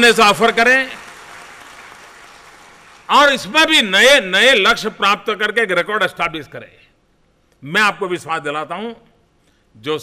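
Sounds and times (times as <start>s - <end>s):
audience applauding: 0.4s - 3.1s.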